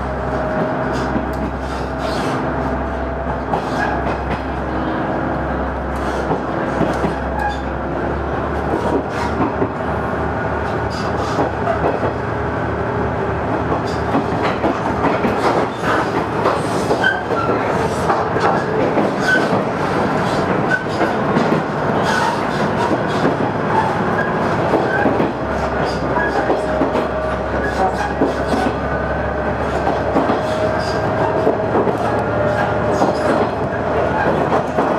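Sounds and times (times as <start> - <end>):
train wheels on rails: 0.0 - 34.9.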